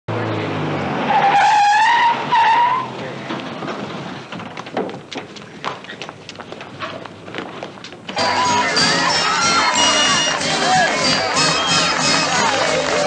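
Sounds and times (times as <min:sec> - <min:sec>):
tyres squealing: 0:01.0 - 0:13.0
knocks and clatter: 0:03.0 - 0:08.2.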